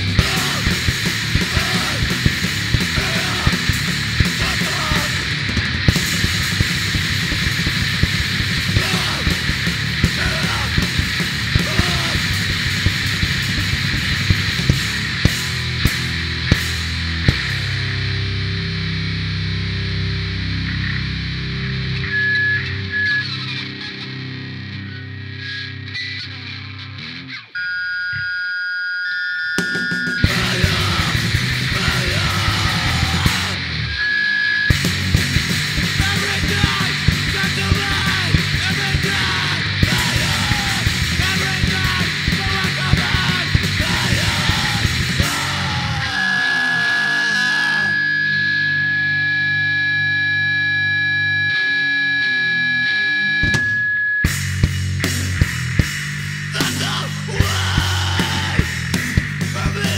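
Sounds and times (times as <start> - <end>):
very fast drumming: 0.0 - 17.6, 29.8 - 33.6, 34.7 - 46.0, 54.3 - 59.9
distorted guitar chords: 0.0 - 28.3, 29.4 - 59.9
high-pitched guitar tones: 0.0 - 59.9
high-pitched whine: 17.5 - 25.7, 29.4 - 55.9.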